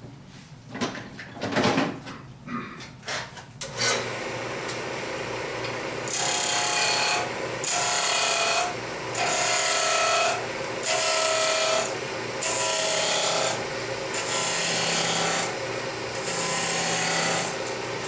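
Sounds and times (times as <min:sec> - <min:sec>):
wood lathe humming: 0:03.9 - 0:18.0.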